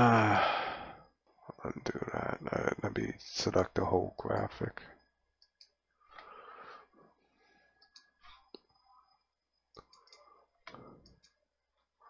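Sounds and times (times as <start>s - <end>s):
computer mouse clicks: 5.4s - 6.3s, 7.8s - 8.8s, 9.7s - 11.4s.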